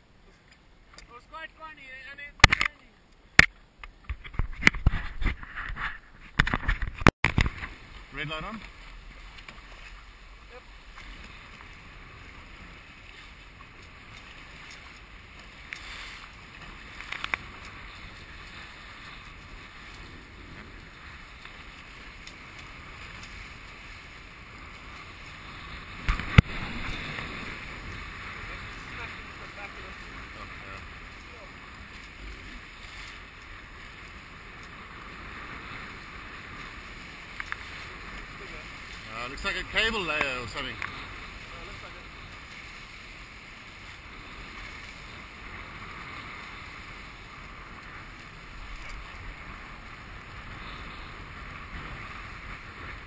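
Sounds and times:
wind and water noise: 0:00.0 - 0:53.0
small click: 0:02.4 - 0:02.8.

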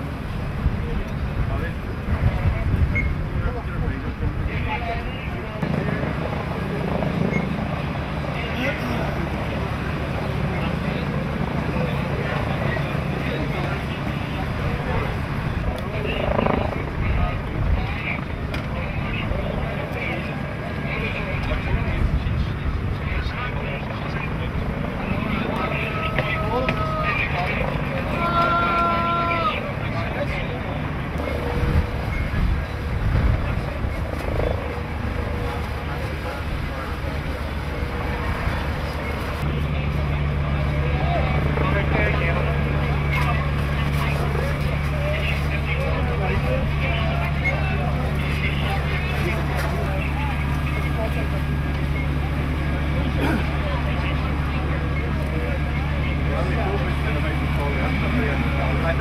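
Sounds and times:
engine rumbling: 0:00.0 - 0:59.0
indistinct voices: 0:00.6 - 0:59.0.

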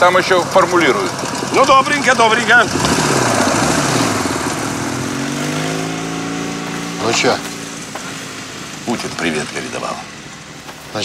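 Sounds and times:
motorcycle engine pulling away: 0:00.0 - 0:11.0.

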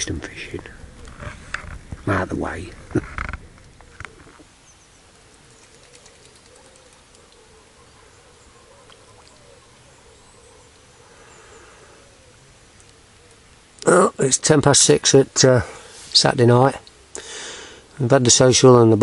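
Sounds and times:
ducks calling softly: 0:00.0 - 0:14.3.

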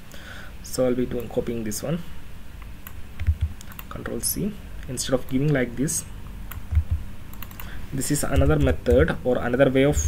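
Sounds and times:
computer keyboard keystrokes: 0:02.8 - 0:04.0, 0:06.5 - 0:07.7, 0:08.3 - 0:09.1
dull low knocks: 0:06.7 - 0:07.1.

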